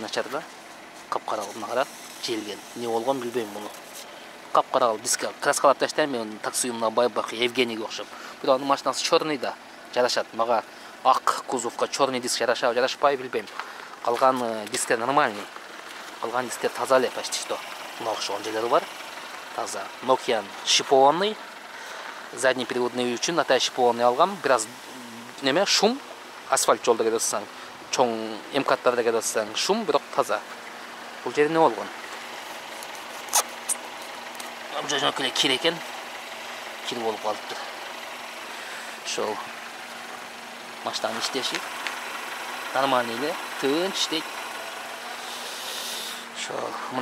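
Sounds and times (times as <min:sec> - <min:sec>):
man talking: 0:00.0 - 0:00.5, 0:01.1 - 0:03.8, 0:04.5 - 0:15.5, 0:16.2 - 0:18.9, 0:19.6 - 0:21.4, 0:22.3 - 0:30.5, 0:31.2 - 0:32.0, 0:34.7 - 0:35.9, 0:36.8 - 0:37.8, 0:39.0 - 0:39.6, 0:40.8 - 0:41.7, 0:42.7 - 0:44.3, 0:46.4 - 0:47.0
car engine idling: 0:00.0 - 0:47.0.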